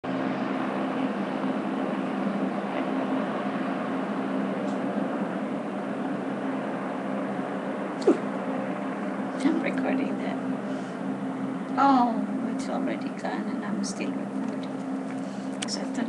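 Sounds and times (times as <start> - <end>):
steady mechanical hum: 0.0 - 16.0.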